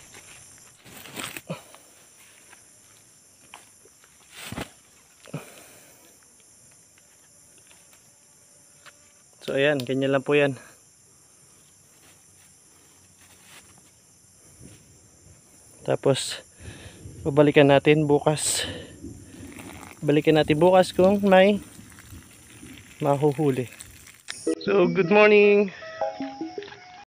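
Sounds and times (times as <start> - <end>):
dry leaves and twigs crackling: 0.0 - 8.1, 11.5 - 14.9, 18.6 - 24.5
high-pitched insect chorus: 0.0 - 27.0.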